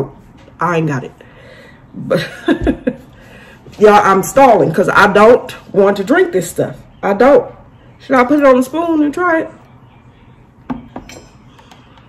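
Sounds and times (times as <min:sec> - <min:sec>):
metal spoon clinking: 0:10.9 - 0:11.6.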